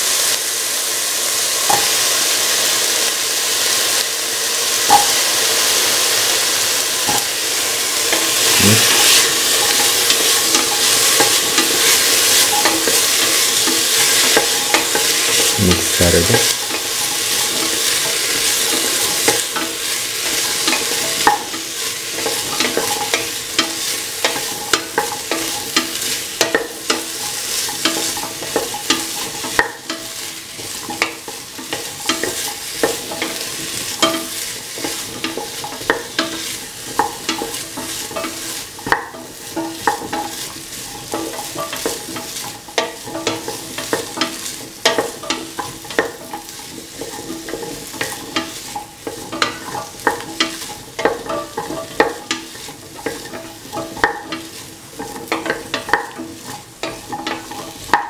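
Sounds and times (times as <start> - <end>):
vegetables sizzling in a pan: 0.0 - 58.0
utensil scraping the pan: 6.9 - 58.0.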